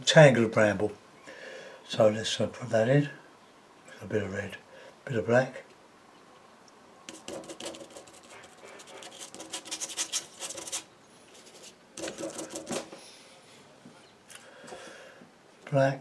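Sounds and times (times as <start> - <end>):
paintbrush scrubbing on paper: 7.1 - 12.8.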